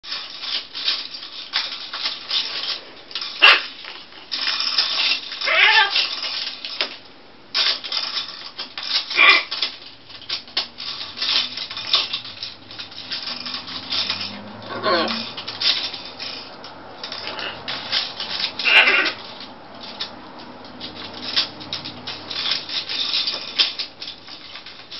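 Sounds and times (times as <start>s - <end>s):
parrots clicking plastic toys: 0.0s - 24.9s
macaw squawking: 3.4s - 3.7s, 5.4s - 6.0s, 9.1s - 9.6s, 14.7s - 15.2s, 18.6s - 19.2s.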